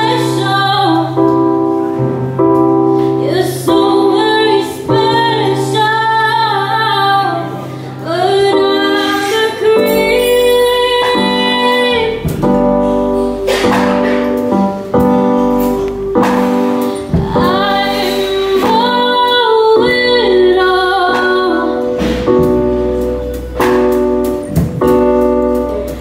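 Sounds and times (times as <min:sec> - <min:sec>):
electric keyboard: 0:00.0 - 0:26.0
woman singing jazz: 0:00.0 - 0:26.0.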